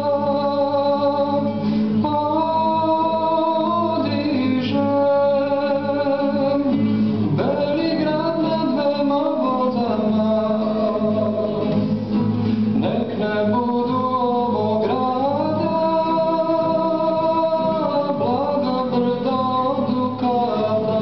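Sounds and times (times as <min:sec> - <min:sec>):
classical guitar: 0:00.0 - 0:21.0
man singing: 0:00.0 - 0:21.0.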